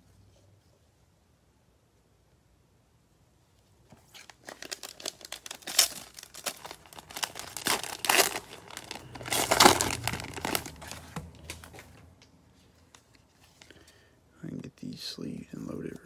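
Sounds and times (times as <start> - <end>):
cellophane wrapper crinkling and tearing: 4.0 - 12.0.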